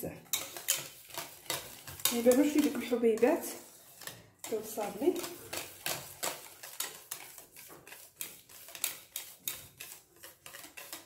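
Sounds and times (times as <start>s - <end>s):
whisk clicking and scraping pan: 0.0s - 11.0s.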